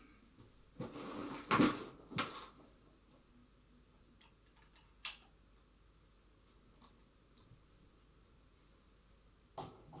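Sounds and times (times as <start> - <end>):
small clicks: 4.2 - 5.7.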